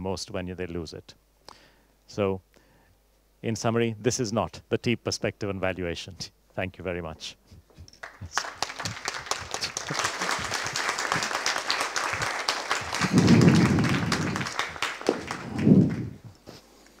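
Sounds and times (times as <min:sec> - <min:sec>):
audience applauding: 0:08.0 - 0:16.3.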